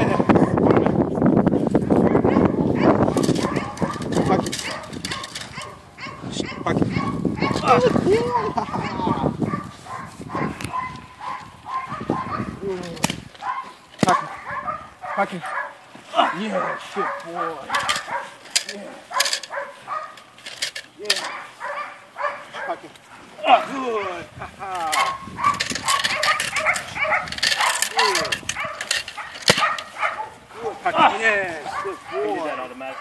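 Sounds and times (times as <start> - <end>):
dogs barking and whining: 0.0 - 1.0, 1.8 - 33.0
person's voice: 7.6 - 9.4.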